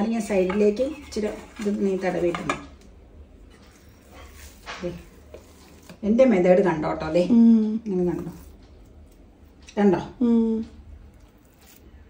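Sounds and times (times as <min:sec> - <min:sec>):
woman's voice: 0:00.0 - 0:02.7, 0:06.0 - 0:08.5, 0:09.7 - 0:10.8.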